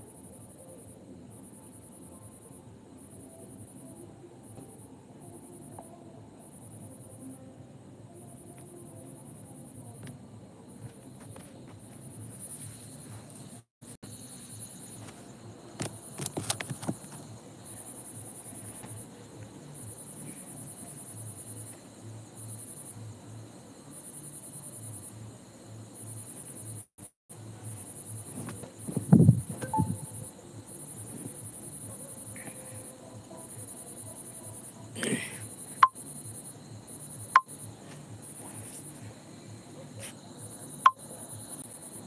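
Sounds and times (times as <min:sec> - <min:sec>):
crickets chirping: 0:00.0 - 0:42.0
insects trilling: 0:00.0 - 0:42.0.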